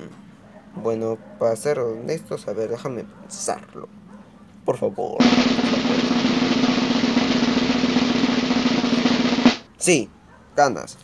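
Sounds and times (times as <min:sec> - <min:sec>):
snare drum roll: 0:05.2 - 0:09.6.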